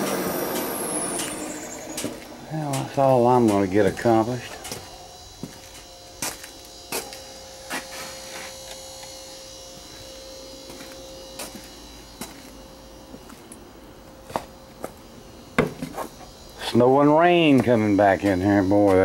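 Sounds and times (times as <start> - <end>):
faint steady hum: 0.0 - 19.0.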